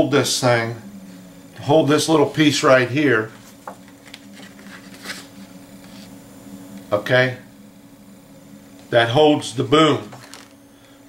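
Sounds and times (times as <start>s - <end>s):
low electrical hum: 0.0s - 11.0s
paper rustling: 3.4s - 6.1s.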